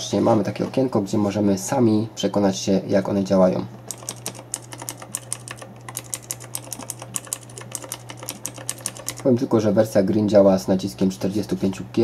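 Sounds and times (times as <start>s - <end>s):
mechanical keyboard clicks: 3.8s - 9.3s.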